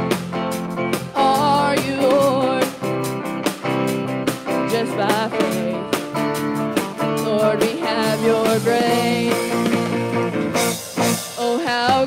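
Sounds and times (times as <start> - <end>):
band playing guitars: 0.0 - 12.0
woman singing lead: 1.0 - 3.2, 4.4 - 10.2, 11.1 - 12.0.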